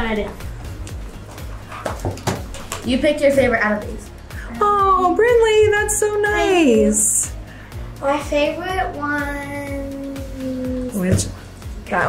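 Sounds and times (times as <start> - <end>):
low background music: 0.0 - 12.0
notebooks knocking on table: 1.7 - 2.8.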